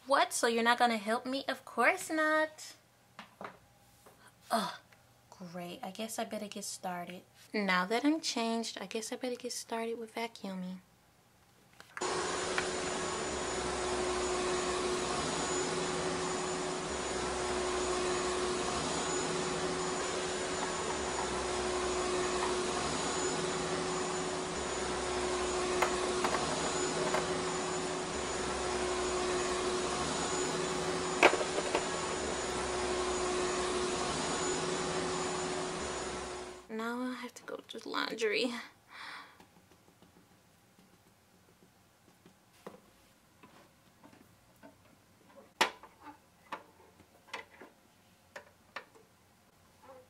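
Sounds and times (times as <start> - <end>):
vacuum cleaner running: 12.0 - 36.7.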